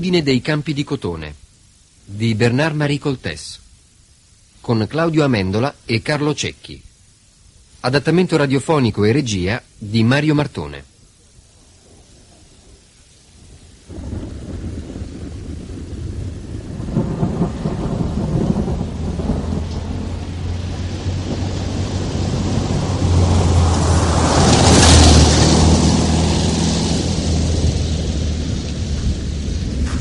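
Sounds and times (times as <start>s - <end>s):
steady rain: 0.0s - 30.0s
rolling thunder rumble: 13.5s - 30.0s.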